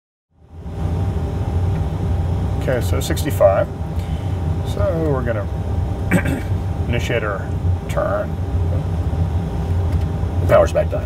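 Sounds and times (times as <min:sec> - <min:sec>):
cockpit low rumble: 0:00.4 - 0:11.0.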